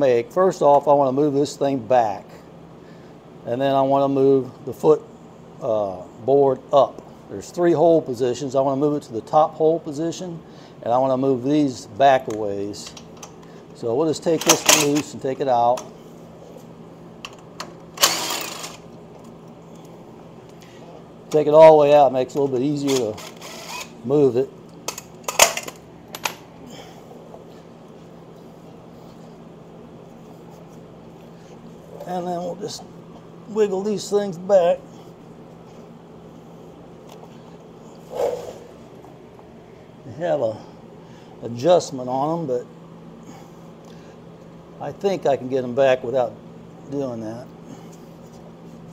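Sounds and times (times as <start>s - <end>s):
steady background hum: 0.0s - 48.9s
impact driver burst: 18.0s - 18.8s.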